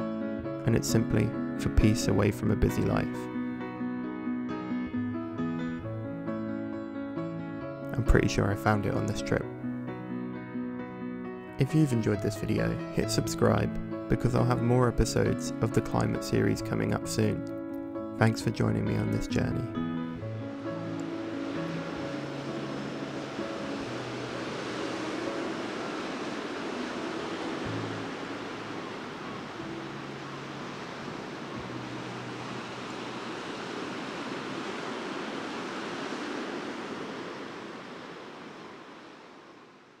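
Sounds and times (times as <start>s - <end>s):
sea surf washing in: 0.0s - 3.8s, 11.6s - 17.4s, 18.2s - 40.0s
soft music with low held notes: 0.0s - 35.0s.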